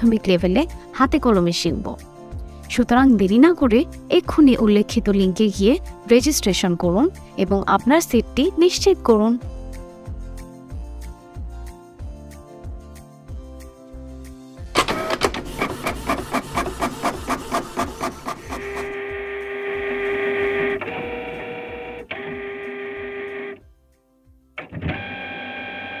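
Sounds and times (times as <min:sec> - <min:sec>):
held electronic tone: 0:18.5 - 0:23.6.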